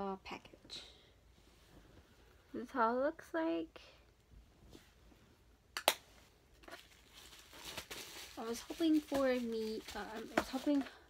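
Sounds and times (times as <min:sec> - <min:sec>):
rustling in cardboard box: 0:06.6 - 0:11.0.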